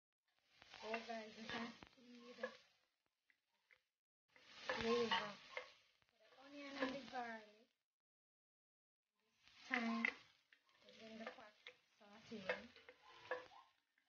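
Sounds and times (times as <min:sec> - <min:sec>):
oil sizzling in a pot: 0:00.3 - 0:07.8, 0:09.2 - 0:14.0
spatula stirring: 0:00.4 - 0:07.3, 0:09.2 - 0:14.0.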